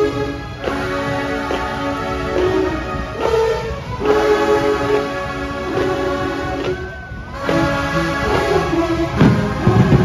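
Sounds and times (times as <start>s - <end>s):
brass band playing held chords: 0.0s - 10.0s.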